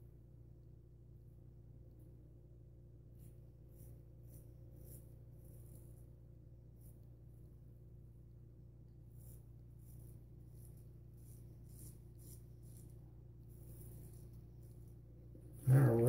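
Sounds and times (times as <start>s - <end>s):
low hum: 0.0s - 16.0s
razor scraping stubble: 3.2s - 6.1s, 9.1s - 16.0s.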